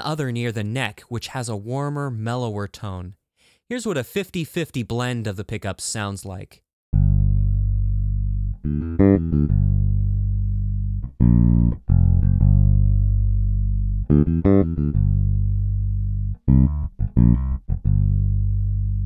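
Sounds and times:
electric bass fingerstyle playing: 6.9 - 19.0.

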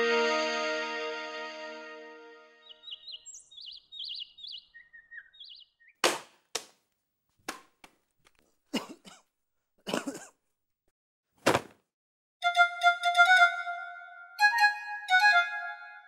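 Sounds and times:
birds chirping: 2.6 - 6.0.

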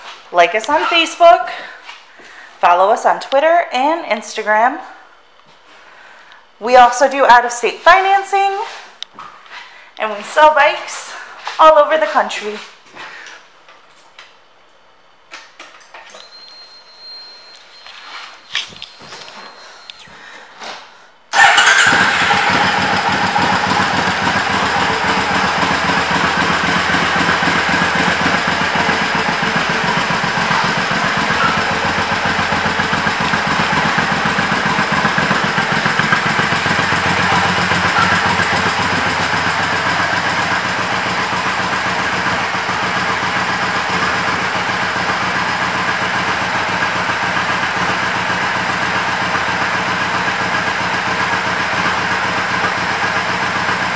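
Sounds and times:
motorcycle engine idling: 21.3 - 53.9.

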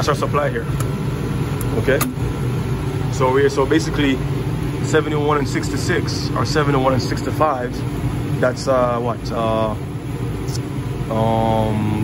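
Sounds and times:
air conditioning unit humming: 0.0 - 12.0.

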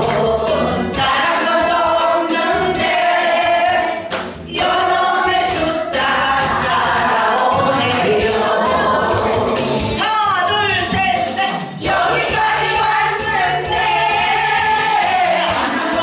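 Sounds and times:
group of voices singing along: 0.0 - 10.1, 11.8 - 16.0
backing track: 0.0 - 16.0.

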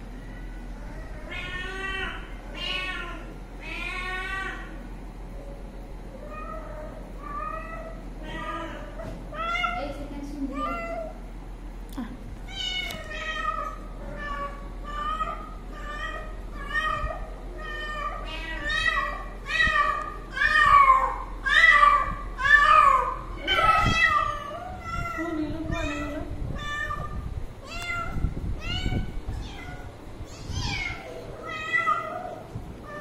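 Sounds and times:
cat meowing: 1.2 - 4.8, 12.5 - 33.0.

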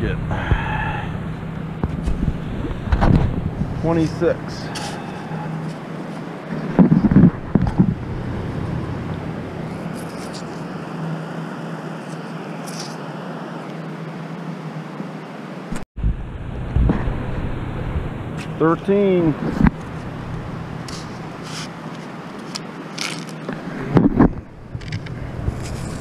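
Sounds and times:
wind rushing on microphone: 0.0 - 10.8, 15.7 - 21.4, 23.5 - 26.0
low thumps: 0.2 - 3.8, 6.6 - 9.8, 15.7 - 18.6.

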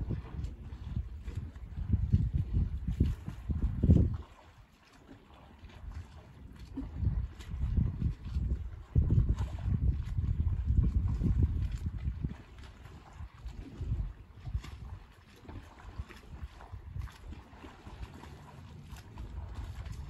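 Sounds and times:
wind buffeting microphone: 0.0 - 4.6, 5.7 - 20.0.

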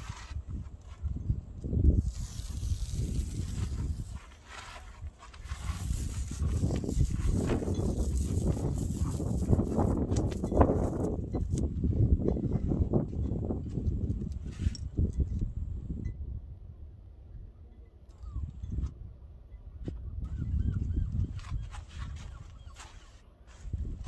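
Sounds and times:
masking tape peeling: 1.8 - 11.7.

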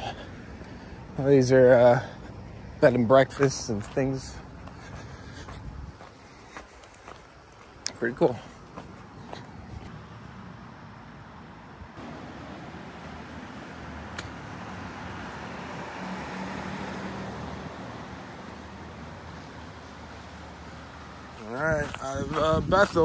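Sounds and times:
background town traffic: 0.0 - 23.0
vehicle passing: 9.5 - 23.0.

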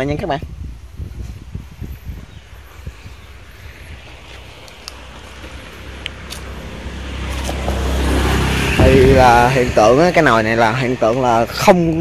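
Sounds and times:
passing motor vehicle rumble: 1.4 - 12.0.

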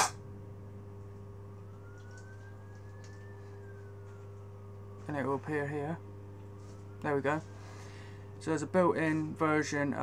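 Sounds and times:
low background hum: 0.0 - 10.0
faint high rising tone: 1.3 - 9.0.

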